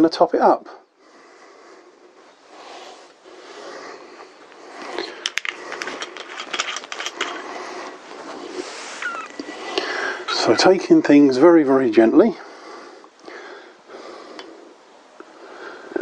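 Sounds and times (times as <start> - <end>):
low hiss: 0.0 - 6.2, 7.0 - 16.0.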